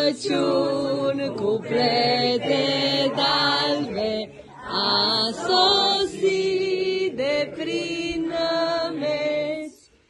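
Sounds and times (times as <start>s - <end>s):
children singing a carol: 0.0s - 9.9s.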